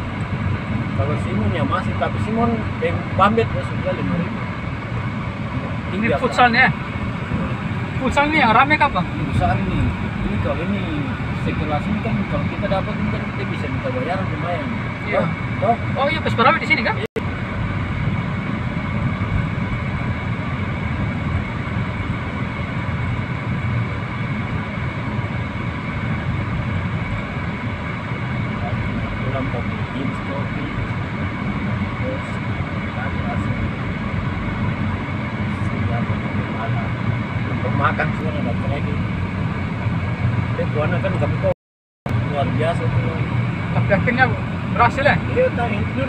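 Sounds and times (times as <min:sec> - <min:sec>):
car road and engine rumble: 0:00.0 - 0:46.0.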